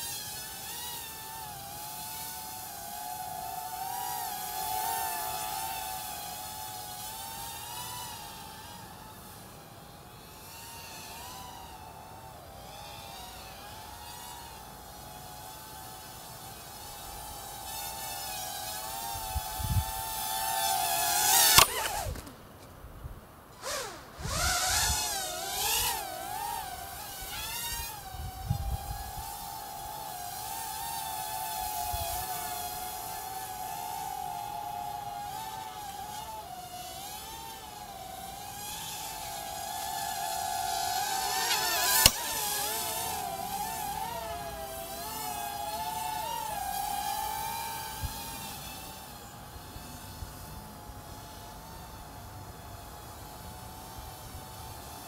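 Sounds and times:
drone propellers whining: 0.0 - 22.4, 23.5 - 52.1.

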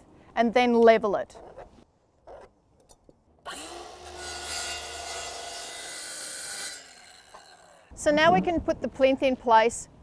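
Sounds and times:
circular saw cutting board: 3.5 - 7.9.

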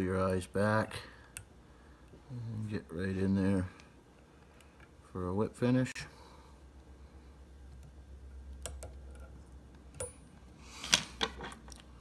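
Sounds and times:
steady low hum: 0.0 - 12.0
metal tool clicking and tapping: 9.9 - 10.2.

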